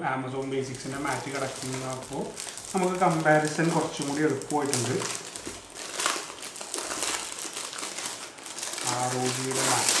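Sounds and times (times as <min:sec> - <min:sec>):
plastic wrapping crinkling: 0:00.3 - 0:10.0.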